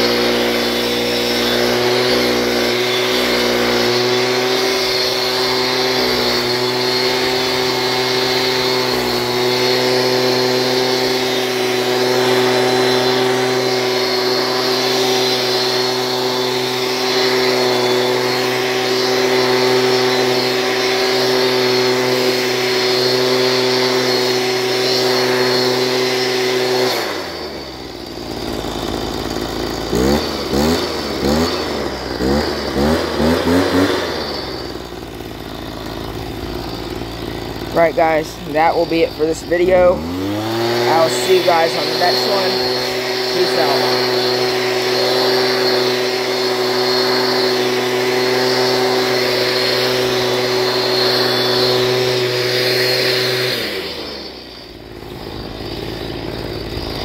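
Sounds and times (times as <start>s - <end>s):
leaf blower running: 0.0s - 57.0s.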